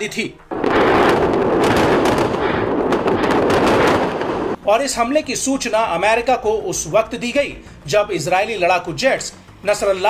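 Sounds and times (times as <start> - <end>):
rapid gunfire: 0.5 - 4.6.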